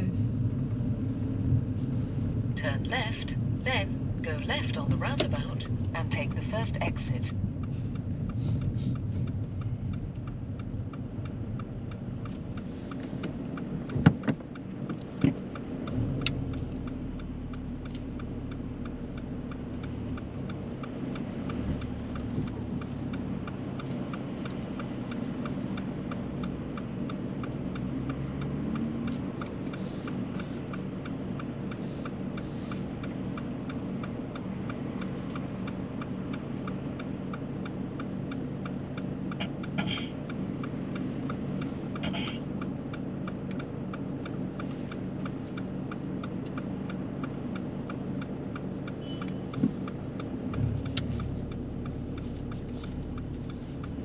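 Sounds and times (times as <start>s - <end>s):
car engine running: 0.0s - 54.0s
turn signal ticking: 0.0s - 54.0s.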